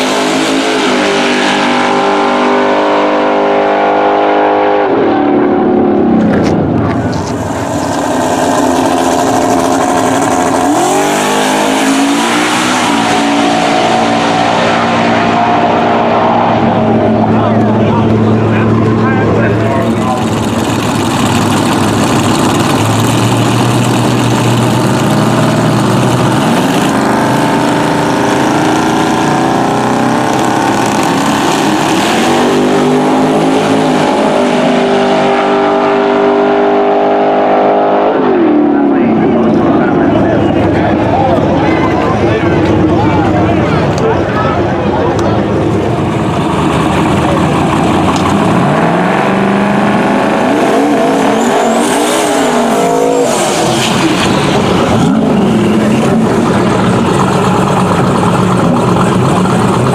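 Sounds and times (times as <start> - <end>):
drag racing car engines revving: 0.0 - 59.9.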